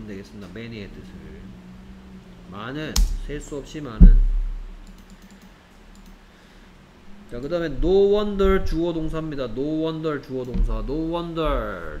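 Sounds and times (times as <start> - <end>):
low thump: 4.0 - 4.8, 10.5 - 11.6
keyboard and mouse clicks: 4.8 - 6.2.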